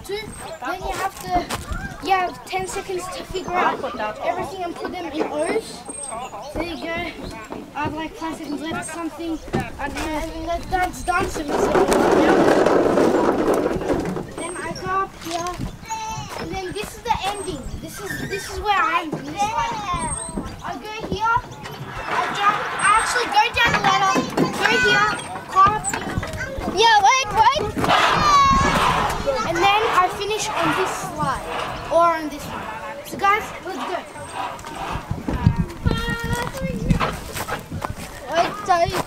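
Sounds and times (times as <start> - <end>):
children calling out: 14.4 - 37.0
thumps and knocks: 19.1 - 33.9.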